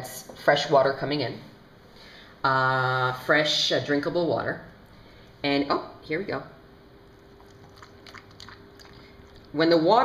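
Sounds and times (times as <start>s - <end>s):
faint steady hum: 0.0s - 10.0s
dog lapping water from metal bowl: 7.4s - 9.4s.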